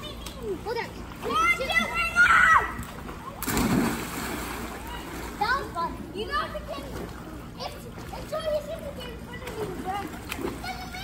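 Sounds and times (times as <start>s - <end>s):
children calling out: 1.2s - 3.4s
big splash into pool: 3.3s - 5.4s.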